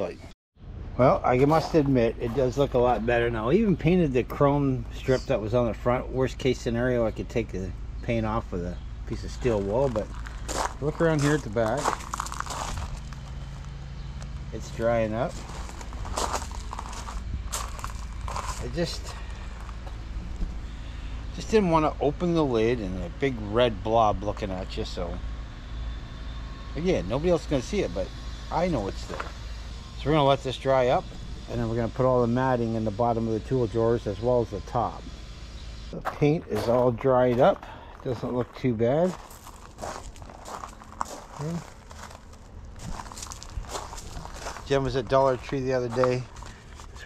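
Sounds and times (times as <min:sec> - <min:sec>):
low background rumble: 0:00.0 - 0:24.0, 0:35.1 - 0:47.0
footsteps crunching on gravel: 0:01.4 - 0:03.2, 0:09.2 - 0:20.7, 0:28.8 - 0:29.4, 0:36.0 - 0:47.0.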